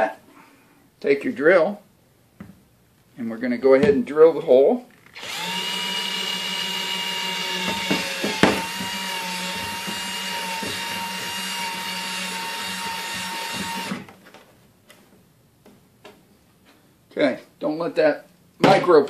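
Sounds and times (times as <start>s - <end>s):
drill bit clicks: 5.1s - 5.7s
power drill whining: 5.1s - 14.1s.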